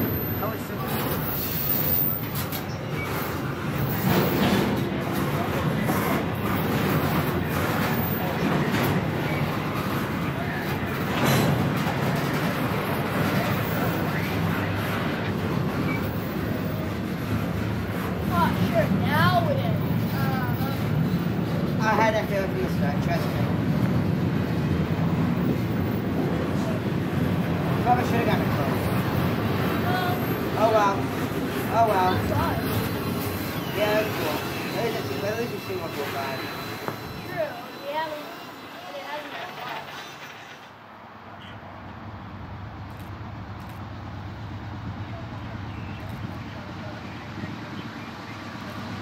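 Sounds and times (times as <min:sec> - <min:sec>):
freight cars clanking: 0:00.0 - 0:40.9
steel wheels rumbling on rail: 0:00.0 - 0:40.9.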